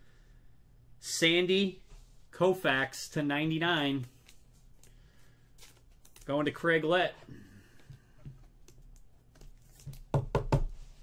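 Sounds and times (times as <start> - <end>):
plastic card holders knocking desk: 9.9 - 10.7.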